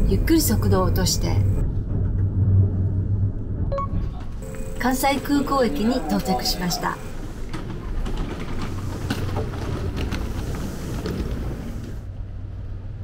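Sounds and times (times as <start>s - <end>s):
train car rumble and hum: 0.0s - 13.0s.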